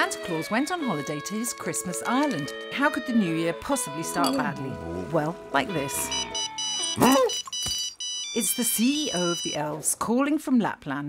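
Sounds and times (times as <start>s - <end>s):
phone ringtone beeping: 5.9s - 9.7s
cartoon vocal yelp: 6.1s - 7.4s.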